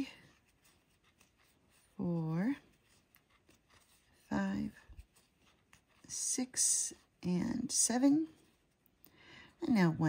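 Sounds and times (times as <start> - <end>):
yarn rubbing through crochet stitches: 0.0 - 8.9.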